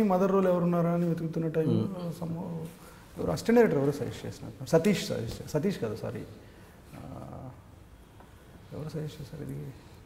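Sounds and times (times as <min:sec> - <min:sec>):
man speaking: 0:00.0 - 0:06.4
man humming: 0:01.6 - 0:02.0.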